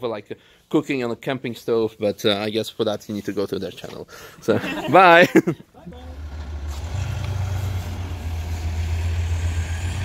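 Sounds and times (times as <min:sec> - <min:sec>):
diesel engine pulling away: 0:05.9 - 0:10.0.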